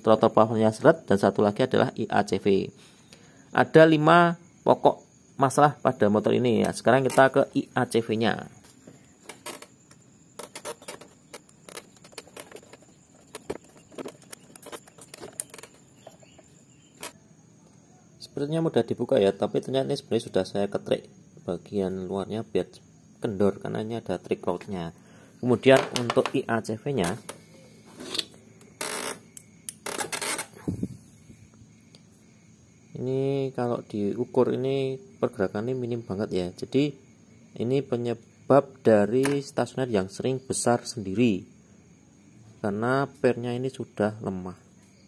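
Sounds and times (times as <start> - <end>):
hands handling valve rustling: 8.6 - 17.2
small ticks: 8.6 - 17.8, 27.0 - 30.6, 31.5 - 32.3.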